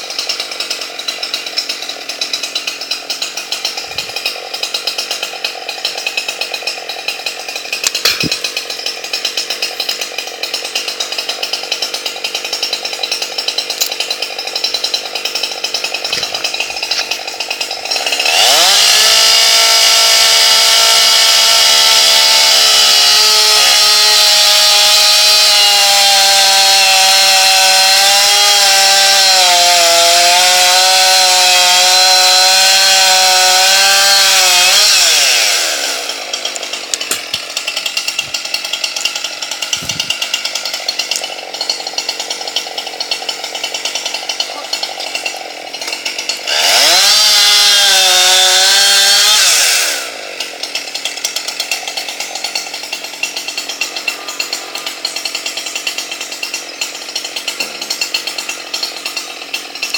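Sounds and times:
chainsaw cutting wood: 0.0s - 59.9s.

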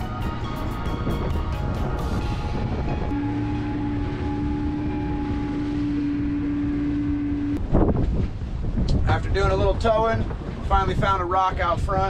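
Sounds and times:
outboard motor running: 0.0s - 8.8s
rush of wind and water: 0.0s - 12.0s.

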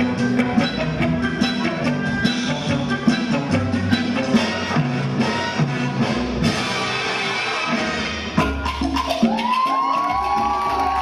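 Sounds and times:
salsa music: 0.0s - 11.0s
crowd cheering: 9.1s - 11.0s
long rising whoops: 9.2s - 11.0s.

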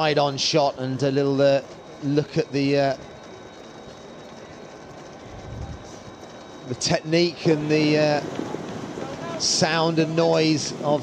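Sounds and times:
runners' footsteps on asphalt: 0.0s - 11.0s.

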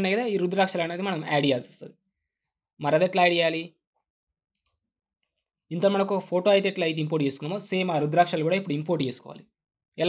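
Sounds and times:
computer mouse clicks: 4.6s - 4.8s.

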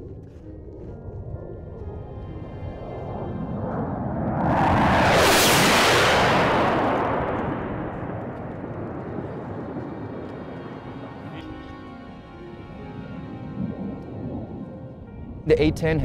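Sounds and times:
music: 0.0s - 4.8s, 8.6s - 16.0s
jet engines rushing past: 1.5s - 15.2s.

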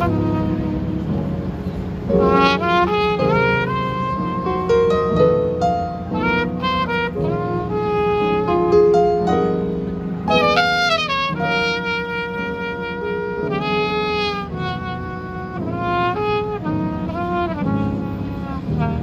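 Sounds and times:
jazz band accompaniment: 0.0s - 19.0s
trumpet jazz solo: 0.0s - 19.0s.

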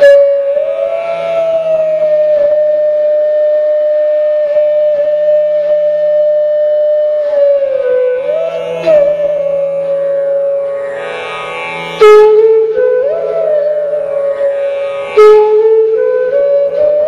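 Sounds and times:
flute holding long note: 0.0s - 17.0s.

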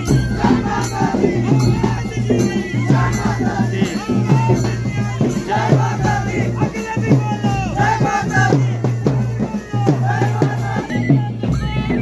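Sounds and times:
large drum beaten steadily: 0.0s - 12.0s
shrill wind instrument melody: 0.0s - 12.0s.

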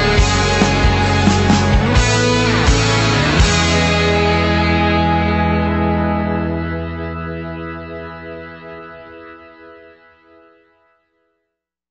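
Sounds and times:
distorted rock guitar and bass chord: 0.0s - 9.8s.

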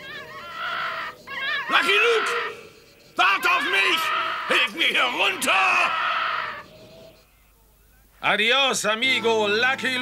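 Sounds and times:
long held cry: 0.0s - 6.7s.

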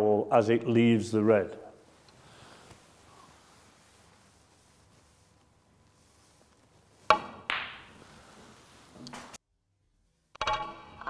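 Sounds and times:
snooker balls cracking together: 7.0s - 9.4s.

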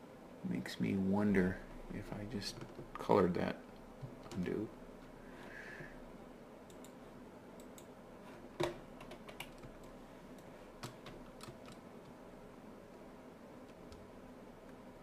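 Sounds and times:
faint room hum: 0.0s - 15.0s
computer keyboard keys clicking: 9.0s - 12.2s.

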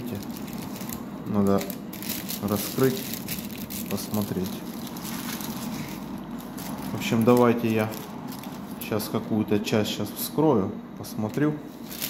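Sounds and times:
paper and plastic bag rustling: 0.0s - 9.1s, 11.7s - 12.0s.

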